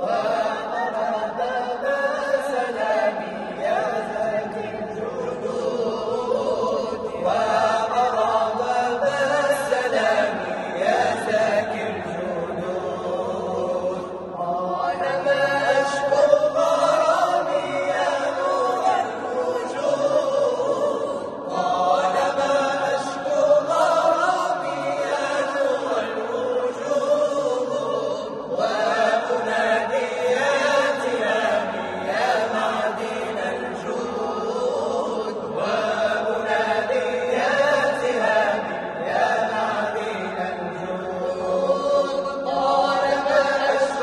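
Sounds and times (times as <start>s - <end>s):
unaccompanied vocal group chanting: 0.0s - 44.0s.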